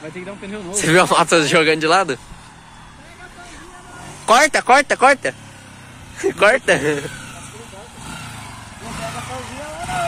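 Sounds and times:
distant motorcycle approaching: 0.0s - 10.0s.

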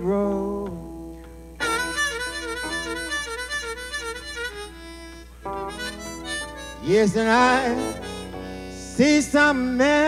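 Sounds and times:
man singing: 0.0s - 2.0s, 6.8s - 10.0s
electric guitar chords: 0.0s - 10.0s
blues harmonica bent notes: 1.6s - 10.0s.

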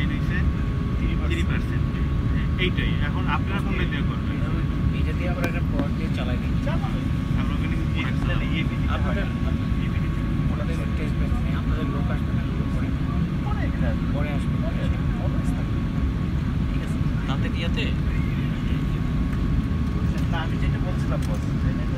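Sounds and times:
faint steady whine: 0.0s - 21.9s
low rumble of aircraft engines: 0.0s - 21.9s
passengers murmuring: 0.0s - 21.9s.

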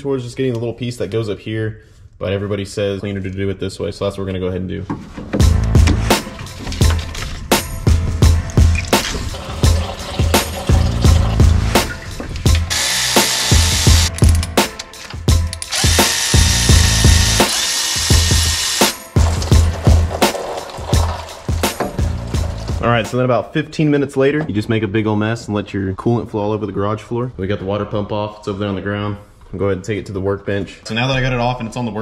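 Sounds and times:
background music with steady beat: 5.2s - 23.4s
cordless electric ratchet running: 12.6s - 14.1s, 15.5s - 19.0s.

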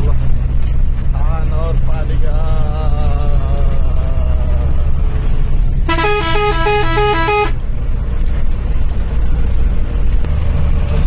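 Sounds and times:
moving vehicle rumble: 0.0s - 11.0s
musical horn two-note warble: 5.9s - 7.6s.

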